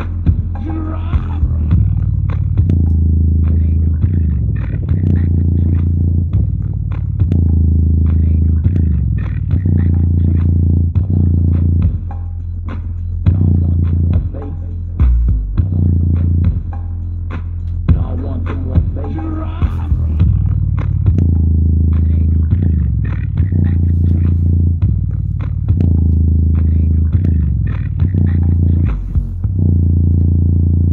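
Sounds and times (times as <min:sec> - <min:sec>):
bass-heavy music from subwoofer: 0:00.0 - 0:30.9.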